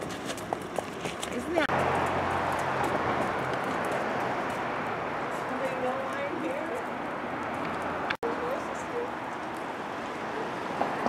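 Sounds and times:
horse hooves clopping on pavement: 0.0s - 9.7s.

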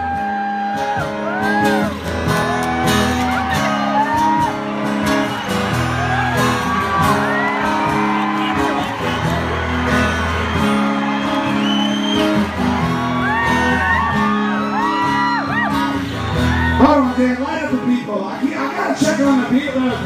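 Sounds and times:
high whoops and screams: 0.0s - 16.8s
crowd cheering: 0.0s - 17.7s
acoustic guitars playing chords: 0.0s - 20.0s.

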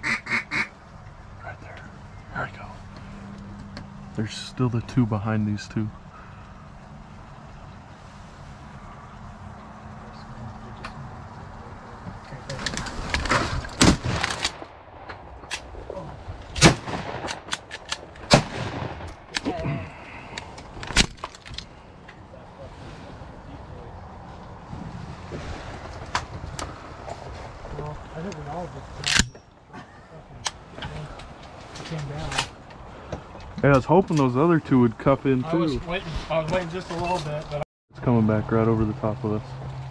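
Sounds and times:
gun handling clatter: 12.6s - 15.7s, 16.4s - 18.4s, 20.3s - 22.2s, 29.0s - 29.6s
shotgun blasts: 16.6s - 19.4s.

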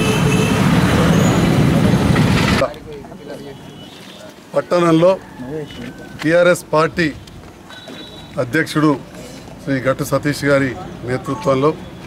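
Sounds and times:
vehicle engines running: 0.0s - 3.2s.

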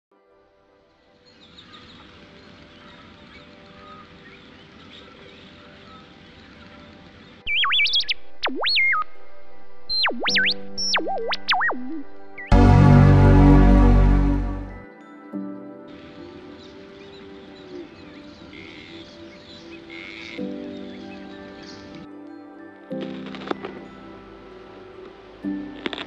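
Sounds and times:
bird chirps: 1.3s - 13.5s
electronic robot bleeps: 7.5s - 9.2s, 9.9s - 14.7s.

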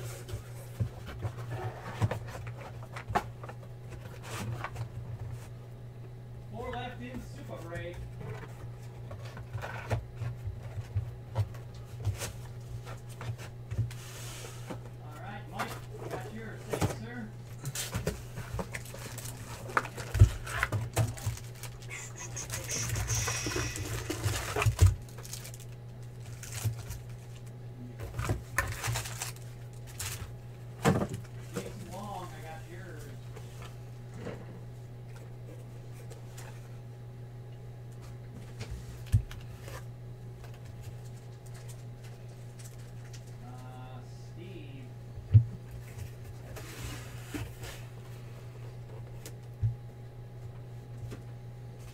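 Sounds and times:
steady low hum: 0.0s - 51.9s
foil card packs rustling: 15.5s - 34.0s, 38.4s - 43.6s.

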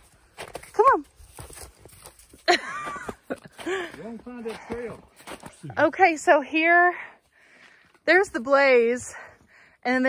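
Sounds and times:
footsteps crunching in snow: 0.0s - 5.7s.

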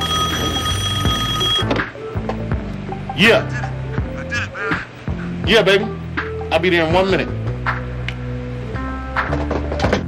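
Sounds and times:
telephone ringing: 0.0s - 1.8s.

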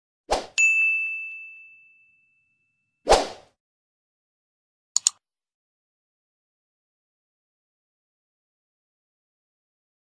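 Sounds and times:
bright bell ding: 0.6s - 2.9s
brief swish: 3.1s - 3.5s.

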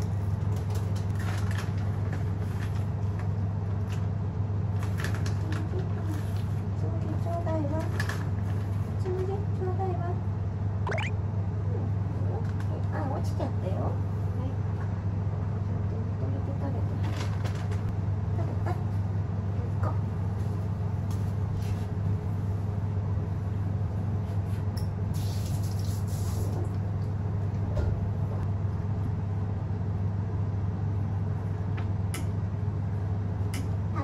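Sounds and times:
low mechanical hum: 0.0s - 34.0s.

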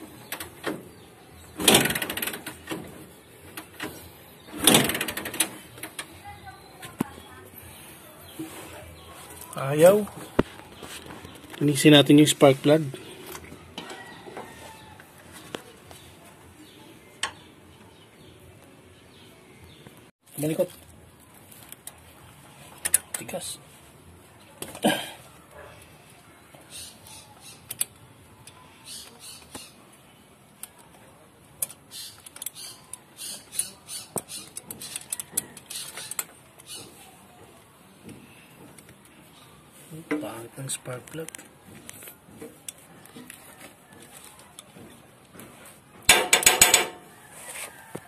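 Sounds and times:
sharp metallic clicks: 3.5s - 6.2s.

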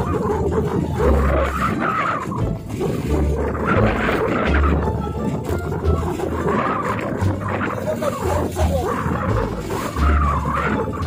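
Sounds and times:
choppy sea water: 0.0s - 11.0s
wind buffeting microphone: 0.0s - 11.0s.

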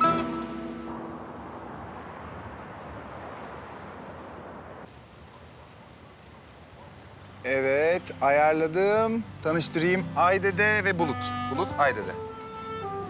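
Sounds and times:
distant city traffic: 0.0s - 13.0s.

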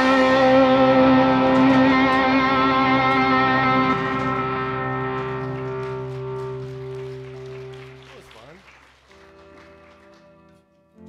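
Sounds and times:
band's held chord ringing out: 0.0s - 8.0s.

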